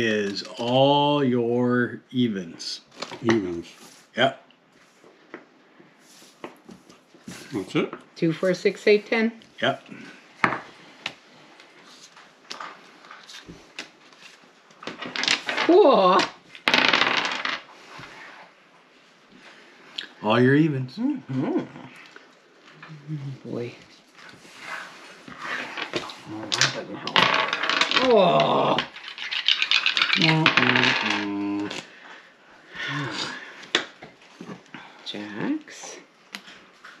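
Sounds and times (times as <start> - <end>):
dice landing on wooden table: 14.8 - 17.7, 25.7 - 31.9
die clattering on wooden table: 14.9 - 15.7, 25.8 - 28.0
dice rattling in hands: 14.9 - 17.6, 25.6 - 31.9.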